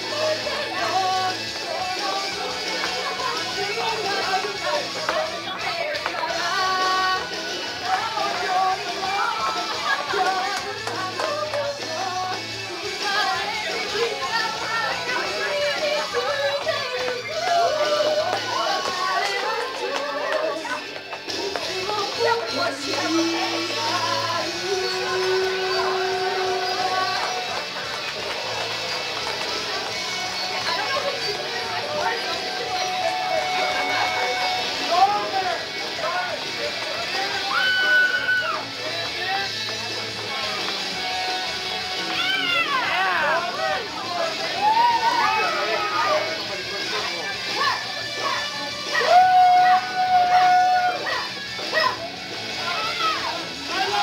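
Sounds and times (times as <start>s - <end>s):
woman singing: 0.0s - 27.6s
backing track music: 0.0s - 54.0s.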